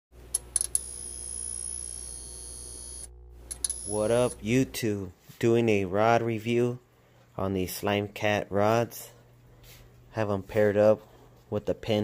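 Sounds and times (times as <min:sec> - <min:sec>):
man speaking: 0:03.8 - 0:06.8, 0:10.1 - 0:12.0.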